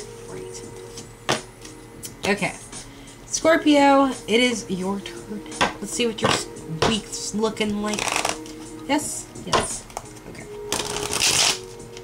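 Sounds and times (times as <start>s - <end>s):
soft background music: 0.0s - 12.0s
cards being shuffled: 7.8s - 8.6s, 9.9s - 11.8s.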